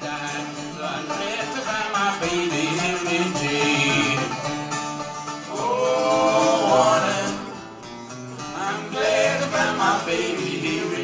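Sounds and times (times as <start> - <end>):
acoustic country band playing: 0.0 - 11.0
plucked guitars: 0.0 - 11.0.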